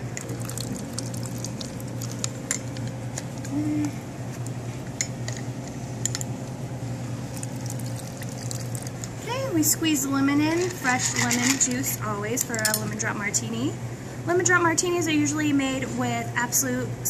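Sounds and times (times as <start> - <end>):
steady low hum: 0.0 - 17.0
juice pouring and dripping into metal tin: 0.1 - 2.9, 7.2 - 9.2.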